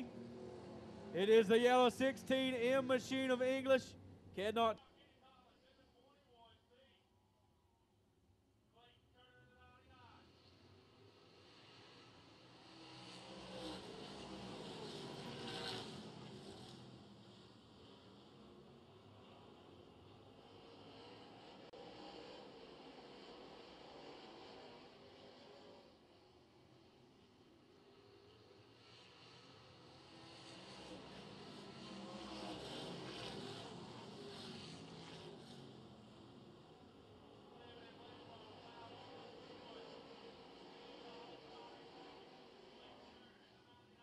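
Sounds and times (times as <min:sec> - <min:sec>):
race cars running: 0:00.0 - 0:04.8, 0:10.1 - 0:44.0
race car passing close by: 0:11.3 - 0:18.3, 0:28.8 - 0:43.4.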